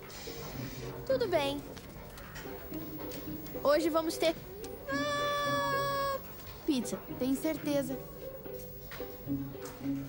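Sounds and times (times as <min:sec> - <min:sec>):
voice holding high note: 0:04.9 - 0:06.2.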